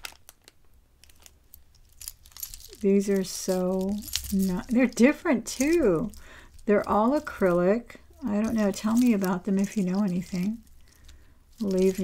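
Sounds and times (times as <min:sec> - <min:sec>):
beads clicking together: 0:01.0 - 0:12.0.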